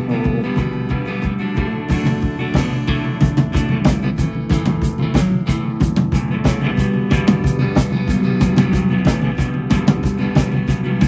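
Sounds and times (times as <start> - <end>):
acoustic guitar strumming: 0.0 - 11.0
drum kit rock beat: 0.0 - 11.0.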